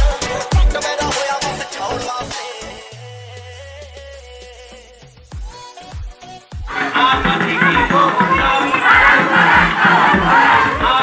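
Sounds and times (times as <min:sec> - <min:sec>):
low rhythmic thuds: 0:06.6 - 0:11.0
crowd shouting together: 0:06.7 - 0:11.0.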